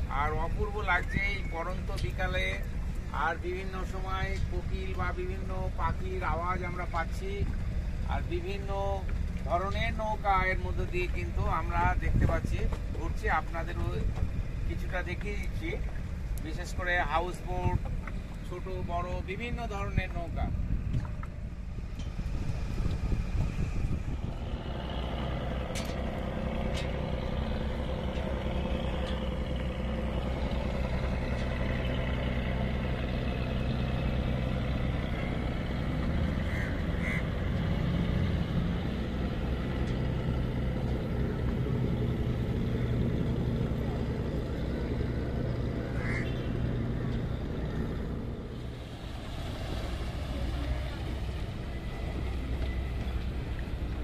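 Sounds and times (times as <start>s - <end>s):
motor boat engine droning: 0.0s - 54.0s
water wash: 0.0s - 54.0s.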